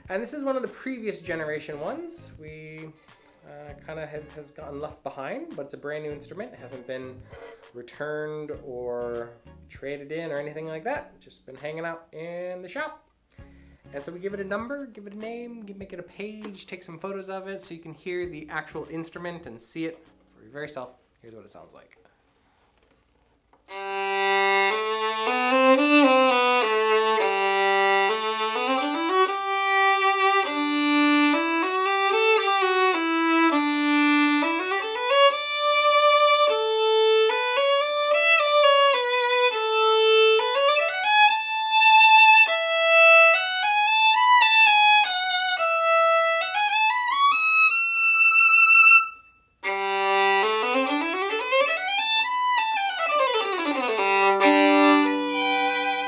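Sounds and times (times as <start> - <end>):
solo bowed violin melody: 23.6 - 56.0.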